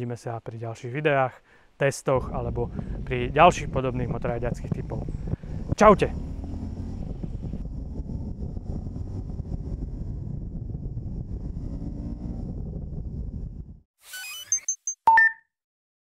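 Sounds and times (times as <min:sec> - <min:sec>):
wind noise: 0:02.2 - 0:13.8
motorcycle engine running: 0:03.8 - 0:13.7
electronic jingle with beeps: 0:14.1 - 0:15.4.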